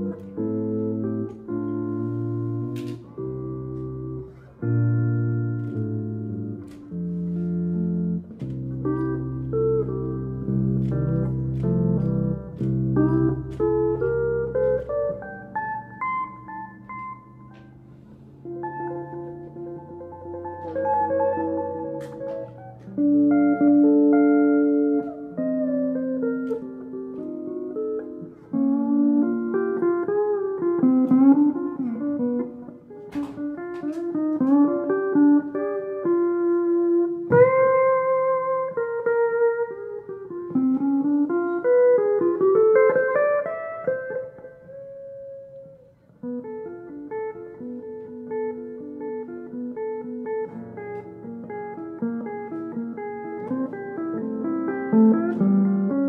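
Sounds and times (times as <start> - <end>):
guitar playing plucked melody: 0.0 - 56.0.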